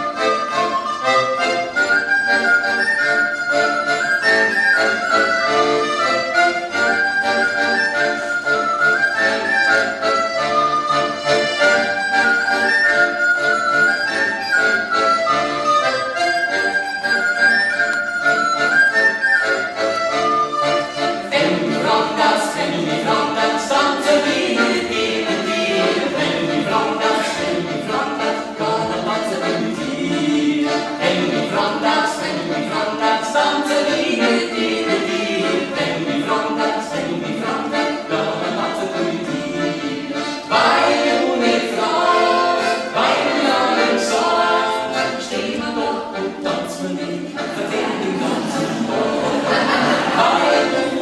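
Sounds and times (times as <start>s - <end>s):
piano accordion: 0.0s - 51.0s.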